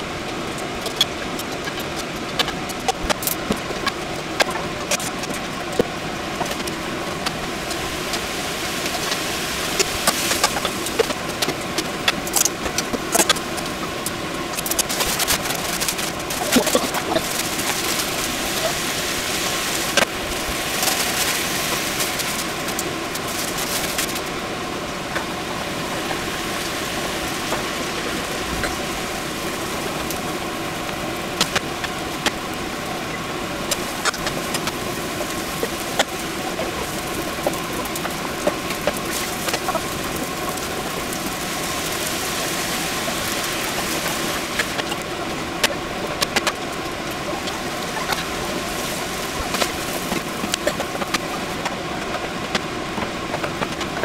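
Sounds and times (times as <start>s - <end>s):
noodles frying in pans: 0.0s - 54.0s
steady hum: 0.0s - 54.0s.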